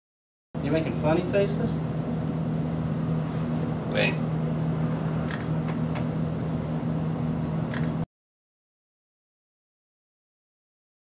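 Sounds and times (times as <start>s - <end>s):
low machine hum: 0.6s - 8.1s.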